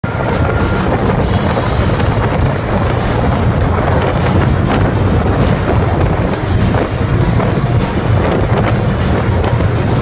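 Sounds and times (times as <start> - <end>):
boat engine rumble: 0.0 - 10.0
wind buffeting: 0.0 - 10.0.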